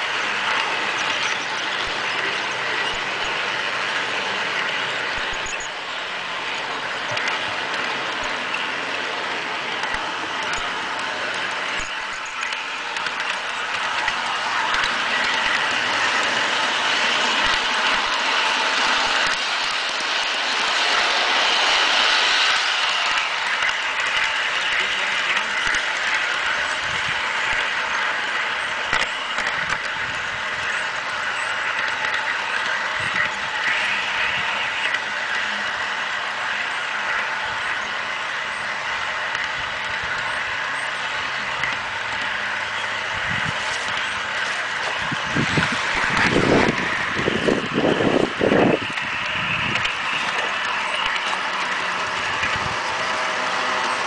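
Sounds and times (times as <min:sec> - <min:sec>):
model train running on track: 0:00.0 - 0:54.0.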